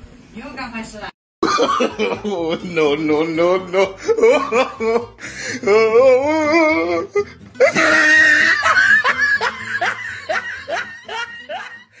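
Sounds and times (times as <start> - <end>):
person laughing: 1.4 - 12.0.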